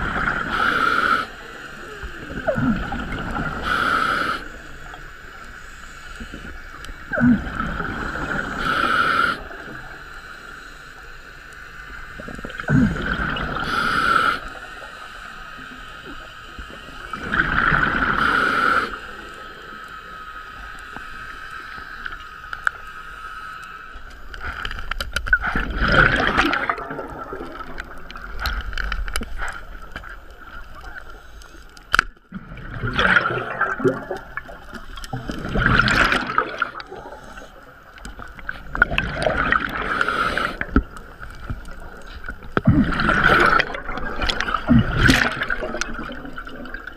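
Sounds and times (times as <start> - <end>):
exhaled bubbles gurgling: 0.0 - 5.5, 6.2 - 10.0, 11.9 - 19.8, 25.2 - 31.4, 32.2 - 46.9
regulator breathing hiss: 0.4 - 2.3, 3.4 - 7.2, 8.0 - 12.7, 13.5 - 17.2, 17.9 - 24.8, 31.0 - 31.9, 36.8 - 38.5, 39.7 - 42.2.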